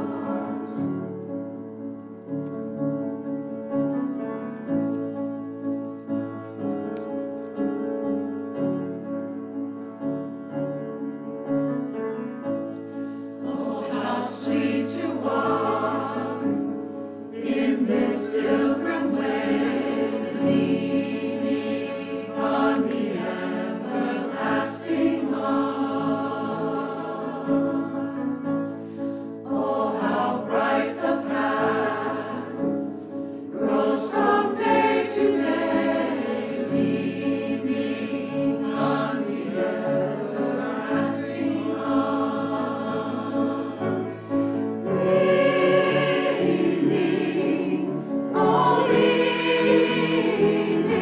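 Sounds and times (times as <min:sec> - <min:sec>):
mixed choir singing: 0:00.0 - 0:01.2, 0:13.3 - 0:51.0.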